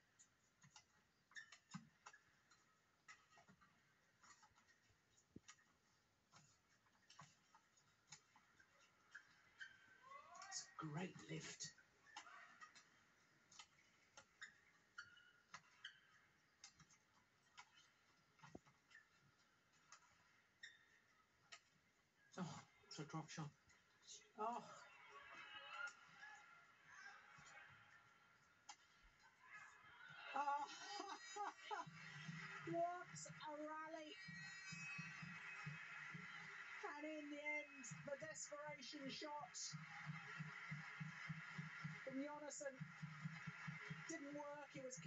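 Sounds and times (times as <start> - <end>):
court shoes squeaking: 0.6 - 3.6, 13.5 - 21.7.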